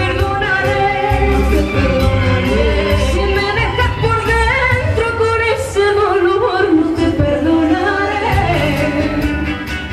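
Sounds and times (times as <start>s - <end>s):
man and woman singing: 0.0s - 9.7s
live dance band playing: 0.0s - 9.9s.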